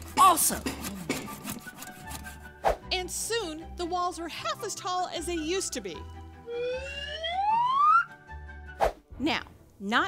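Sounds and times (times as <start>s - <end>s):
soft background music: 0.0s - 10.0s
rising whistle sound effect: 6.4s - 8.2s.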